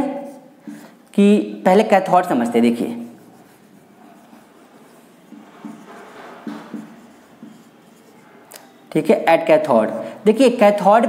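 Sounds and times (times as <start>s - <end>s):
marker pen scratching on whiteboard: 2.2s - 9.2s.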